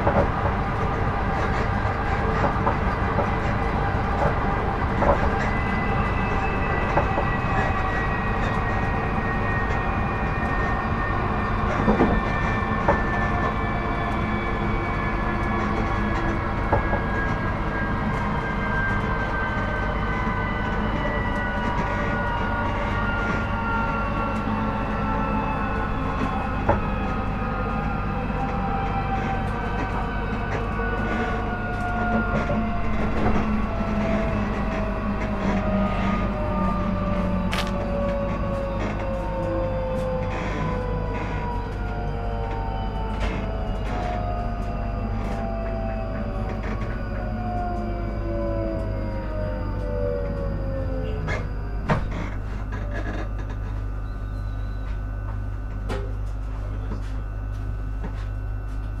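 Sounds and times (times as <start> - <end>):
train running rumble: 0.0 - 59.0
traction motor whine falling: 3.8 - 59.0.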